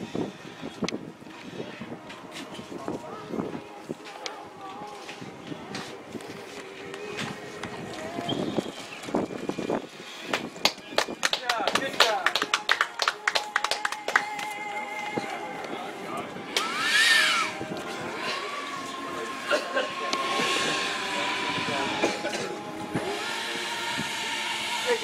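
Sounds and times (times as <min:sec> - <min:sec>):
electric ducted fans whining: 0:00.0 - 0:25.0.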